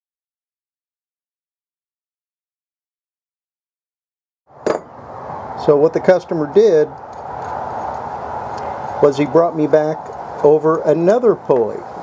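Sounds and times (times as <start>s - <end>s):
faint background noise: 4.5s - 12.0s.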